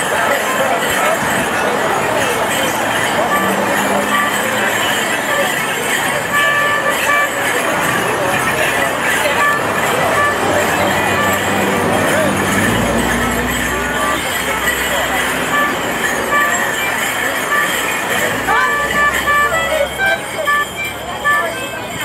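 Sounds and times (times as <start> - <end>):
crowd chatter: 0.0 - 22.0
live folk tune: 0.0 - 22.0
street noise: 0.0 - 22.0.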